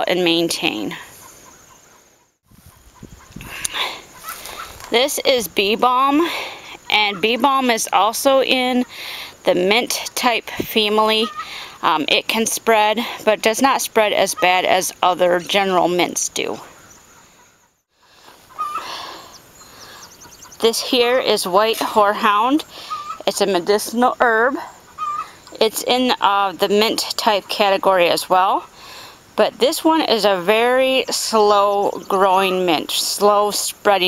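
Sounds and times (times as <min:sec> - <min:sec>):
soft steady hiss: 0:00.0 - 0:34.0
chickens clucking: 0:01.1 - 0:04.9, 0:11.2 - 0:11.6, 0:17.1 - 0:20.8, 0:21.8 - 0:23.5, 0:24.6 - 0:25.6.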